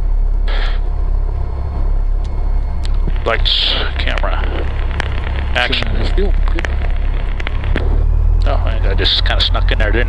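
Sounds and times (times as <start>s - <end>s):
raindrops ticking on windscreen: 4.0s - 7.9s.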